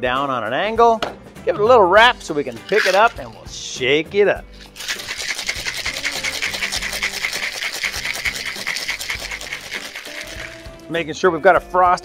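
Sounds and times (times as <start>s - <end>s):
ice rattling in cocktail shaker: 2.4s - 3.6s, 4.6s - 10.9s.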